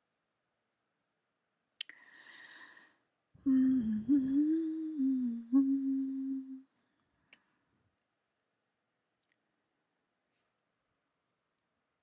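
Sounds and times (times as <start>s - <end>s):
woman humming: 3.4s - 6.7s.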